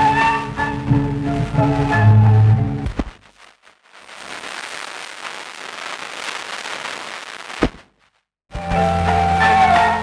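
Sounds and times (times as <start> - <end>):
hissing crackling noise: 0.0 - 8.4
sharp crack: 2.8 - 8.2.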